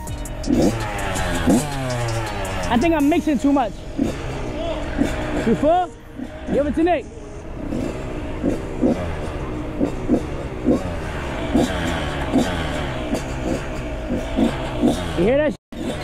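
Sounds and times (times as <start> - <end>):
dirt bike engine idling: 0.0 - 16.0.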